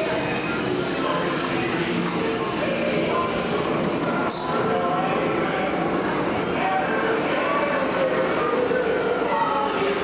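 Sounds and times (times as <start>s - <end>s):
dark ride soundtrack over speakers: 0.0s - 10.0s.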